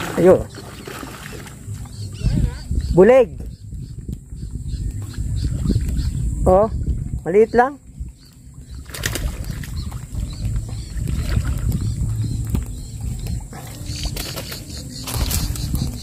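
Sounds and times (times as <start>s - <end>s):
faint bird chirps: 0.2s - 16.0s
low microphone rumble: 1.6s - 14.2s.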